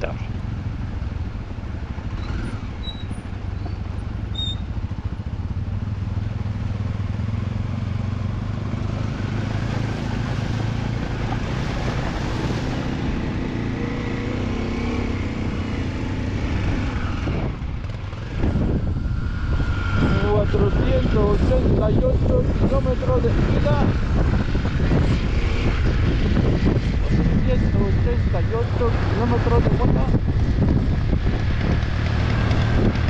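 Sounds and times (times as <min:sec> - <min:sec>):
motorcycle engine running: 0:00.0 - 0:33.0.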